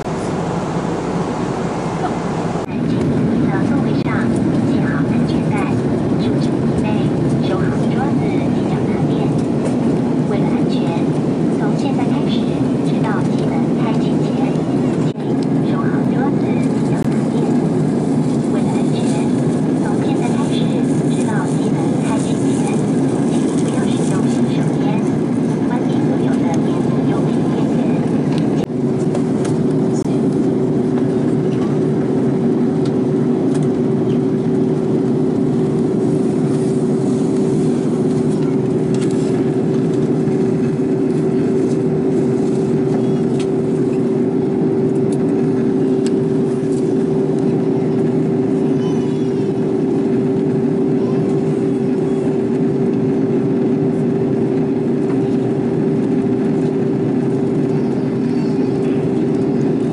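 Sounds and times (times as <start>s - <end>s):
airliner cabin noise: 0.0s - 59.9s
steady hum: 0.0s - 59.9s.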